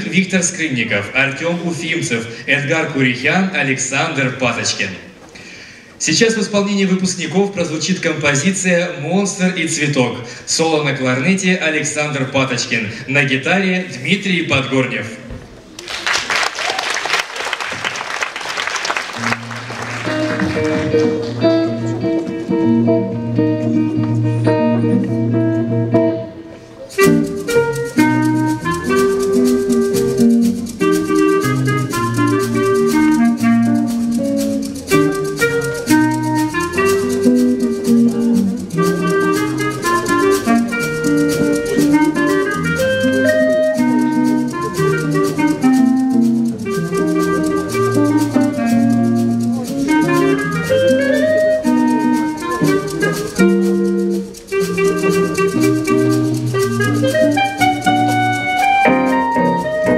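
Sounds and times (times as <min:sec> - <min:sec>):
jazz band playing: 0:17.6 - 0:59.9
clarinet melody: 0:18.8 - 0:59.9
held guitar chords: 0:19.2 - 0:59.9
drums: 0:26.9 - 0:59.9.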